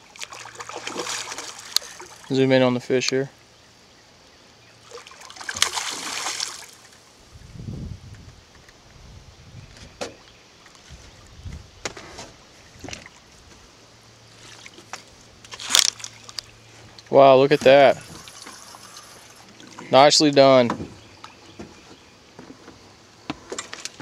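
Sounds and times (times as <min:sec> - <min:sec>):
fish splashing in water: 0:00.0 - 0:02.3, 0:04.8 - 0:07.0
dull thuds and knocks: 0:20.6 - 0:21.0.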